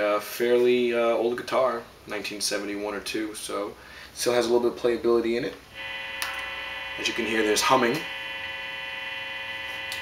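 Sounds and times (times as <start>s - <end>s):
guitar amplifier hum: 5.7s - 10.0s.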